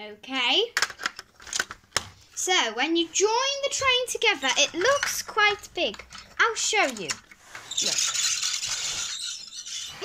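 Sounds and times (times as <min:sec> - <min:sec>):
handling noise rustling and rattling: 0:00.9 - 0:10.0.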